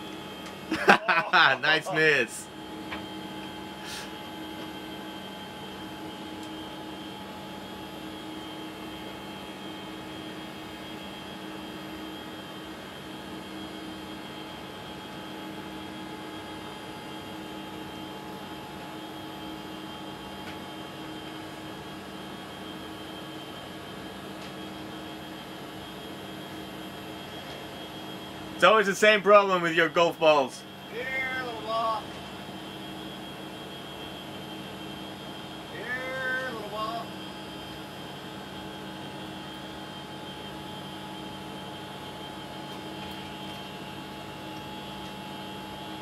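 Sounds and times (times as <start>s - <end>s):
ventilation fans humming: 0.0s - 46.0s.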